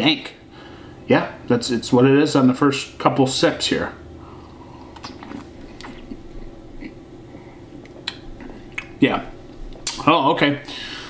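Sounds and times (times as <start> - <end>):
low room hum: 0.0 - 11.0
mouth clicks and lip smacks: 4.8 - 7.0, 7.8 - 9.0, 9.7 - 10.0.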